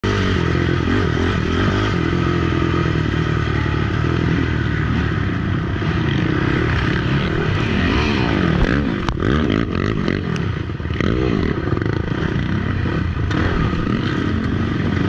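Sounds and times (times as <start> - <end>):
quad engine running: 0.0 - 15.0.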